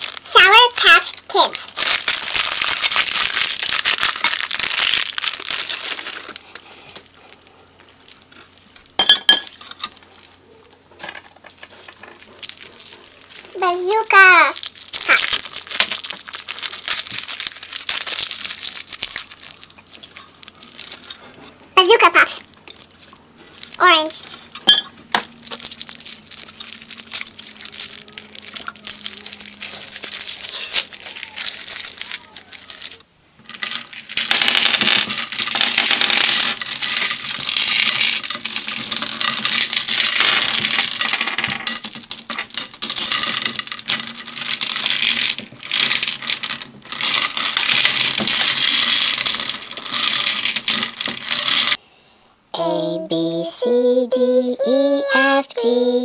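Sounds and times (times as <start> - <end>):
hard candies rattling in plastic bowl: 0.0 - 10.1, 11.0 - 51.8
cellophane wrapper crinkling: 0.0 - 10.4, 11.0 - 51.8
short vocal sounds: 52.6 - 56.0.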